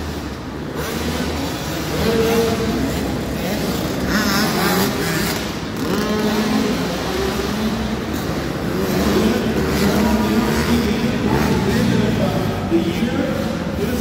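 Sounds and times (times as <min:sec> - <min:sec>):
dirt bike engines revving: 0:00.0 - 0:14.0.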